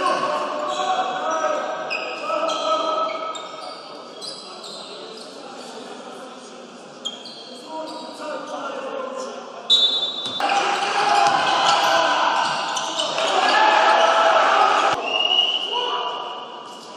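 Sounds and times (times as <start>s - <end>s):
sneaker squeaks: 0.0s - 5.8s, 7.0s - 8.3s, 9.7s - 10.6s, 11.2s - 13.5s
players and spectators voices: 0.0s - 16.9s.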